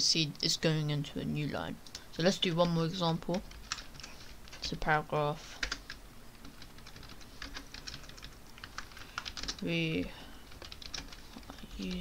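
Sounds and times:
keyboard typing: 0:02.6 - 0:04.8, 0:05.6 - 0:09.7, 0:10.5 - 0:12.0.

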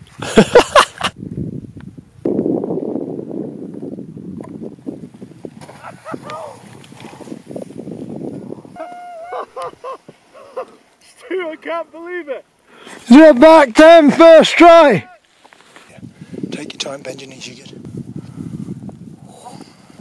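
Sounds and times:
person shouting and yelling: 0:06.0 - 0:06.6, 0:08.8 - 0:09.6, 0:13.1 - 0:15.2.

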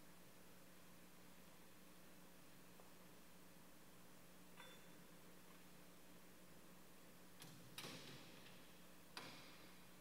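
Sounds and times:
metallic click with short ring: 0:04.6 - 0:05.0.

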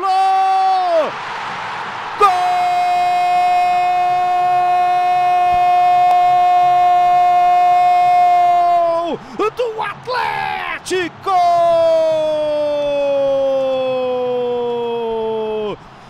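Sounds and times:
narrator shouting goal: 0:00.0 - 0:01.2, 0:02.1 - 0:15.8
crowd cheering: 0:00.0 - 0:16.0.

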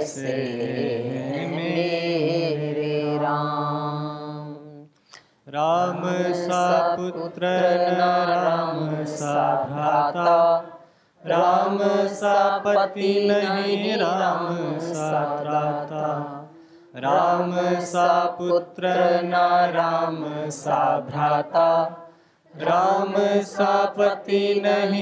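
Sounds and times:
devotional song: 0:00.0 - 0:25.0.

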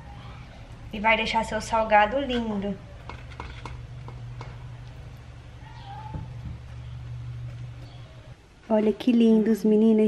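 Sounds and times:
steady low hum: 0:00.0 - 0:09.6.

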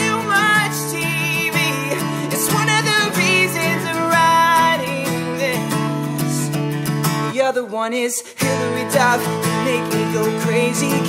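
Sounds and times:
man singing: 0:00.0 - 0:06.6, 0:07.2 - 0:11.0
acoustic guitar strumming: 0:00.0 - 0:11.0.

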